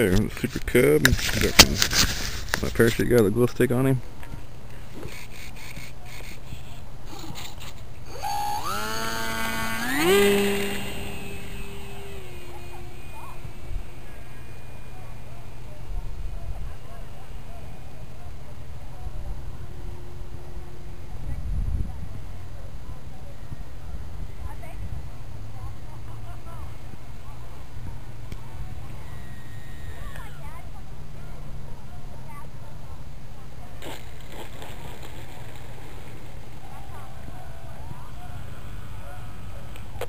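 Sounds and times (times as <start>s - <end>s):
faint distant voices or chirps: 4.1s - 40.0s
model plane electric motor whine: 5.0s - 18.2s, 28.8s - 30.3s
wind rumbling on microphone: 8.0s - 17.6s, 18.8s - 30.7s.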